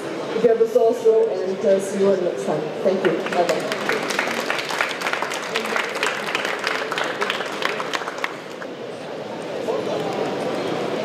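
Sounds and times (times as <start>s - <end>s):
audience applauding: 3.0s - 8.8s.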